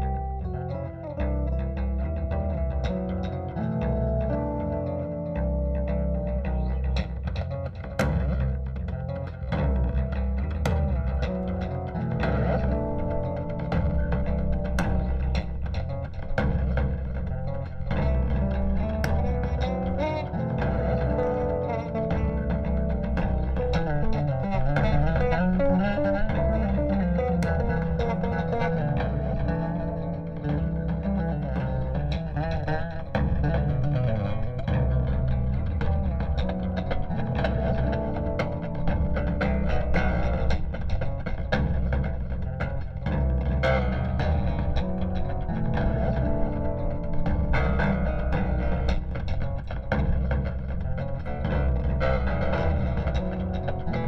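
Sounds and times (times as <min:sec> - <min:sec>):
electric bass guitar playing: 0:00.0 - 0:54.0.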